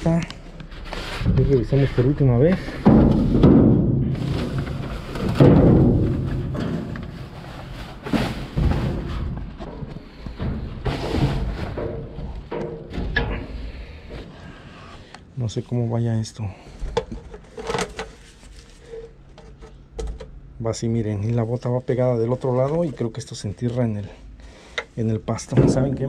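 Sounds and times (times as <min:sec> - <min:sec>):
rustling: 0:00.0 - 0:15.1, 0:17.0 - 0:19.8
objects knocking inside metal dumpster: 0:02.6 - 0:09.8, 0:25.5 - 0:26.0.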